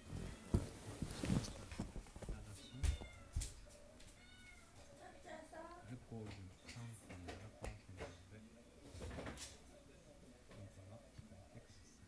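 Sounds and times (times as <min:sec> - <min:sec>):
rustling: 0:00.0 - 0:04.9
cat meowing: 0:02.5 - 0:04.8.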